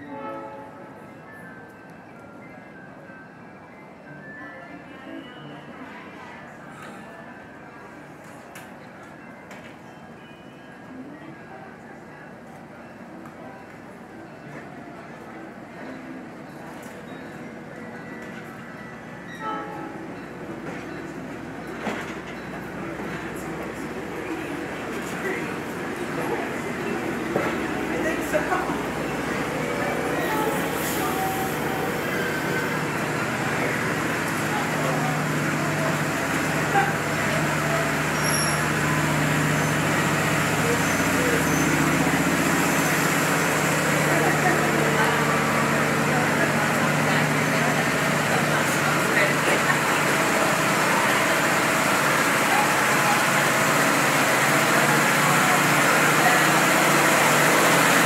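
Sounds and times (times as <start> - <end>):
murmur of voices: 2.7 - 58.0
train wheels rumbling on rail: 16.5 - 58.0
short high tone: 25.2 - 35.2.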